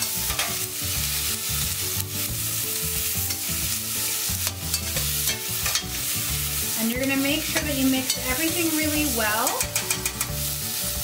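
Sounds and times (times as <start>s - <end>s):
spoon scraping and knocking pan: 0.0s - 1.8s, 2.8s - 11.0s
vegetables sizzling in oil: 0.0s - 11.0s.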